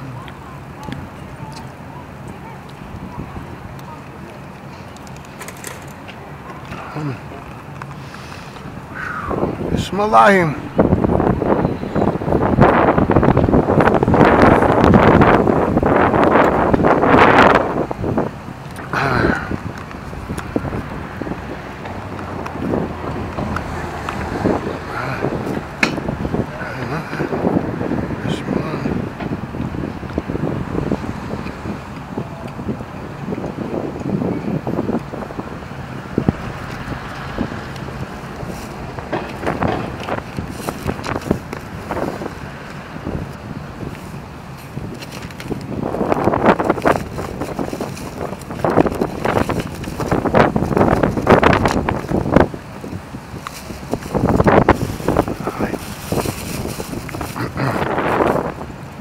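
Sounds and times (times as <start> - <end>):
indistinct voices: 0.0 - 12.2, 18.6 - 29.5, 57.0 - 58.5
wind buffeting microphone: 0.0 - 59.0.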